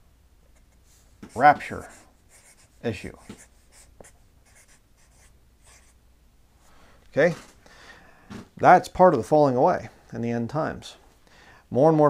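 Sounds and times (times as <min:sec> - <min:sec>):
marker scratching on paper: 0:00.6 - 0:06.0.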